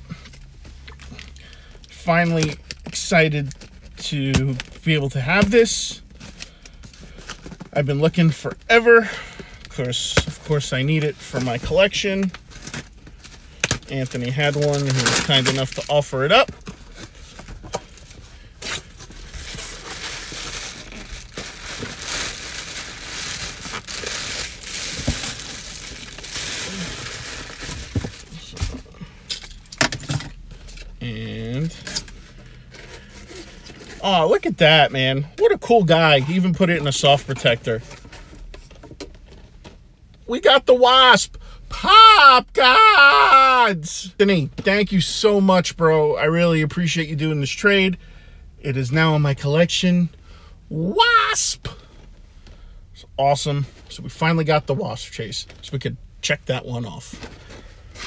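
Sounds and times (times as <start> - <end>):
low steady hum: 0.0 - 58.0
cardboard and packing crinkling: 4.5 - 29.1.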